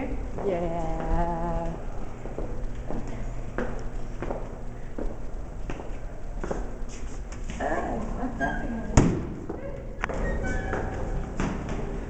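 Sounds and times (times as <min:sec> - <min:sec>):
footsteps: 0:00.0 - 0:08.4.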